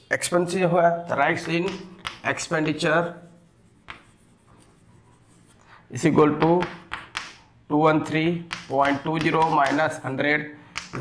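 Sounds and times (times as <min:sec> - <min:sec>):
chalk scratching on chalkboard: 0:01.3 - 0:05.8, 0:08.4 - 0:10.0.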